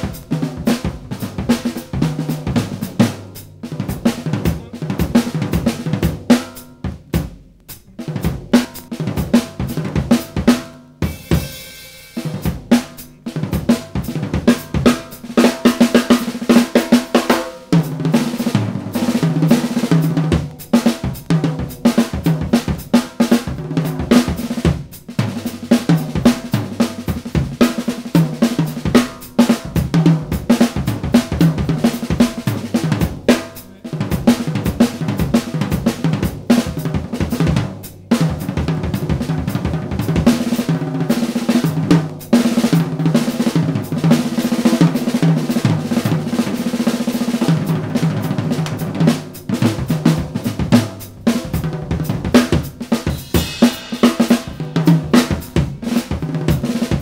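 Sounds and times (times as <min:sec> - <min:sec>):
drum kit solo: 0:00.0 - 0:57.0
fast drum roll: 0:00.0 - 0:57.0
cymbal wash: 0:11.1 - 0:13.9, 0:53.0 - 0:55.8.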